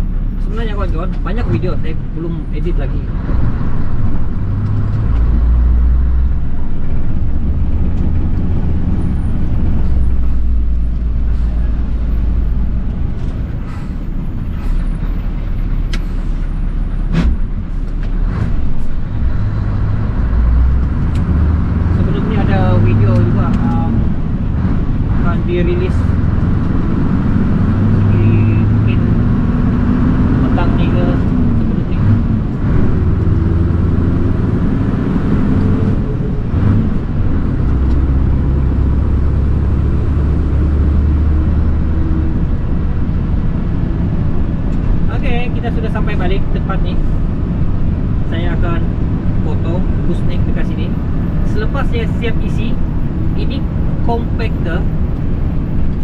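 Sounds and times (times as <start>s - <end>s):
road noise: 0.0s - 56.0s
truck diesel engine drone: 0.0s - 56.0s.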